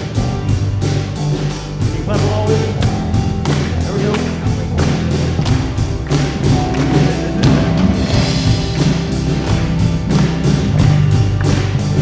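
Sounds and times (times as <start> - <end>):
acoustic guitar: 0.0 - 12.0
electric bass: 0.0 - 12.0
keyboard: 0.0 - 12.0
steady percussive beat: 0.0 - 12.0.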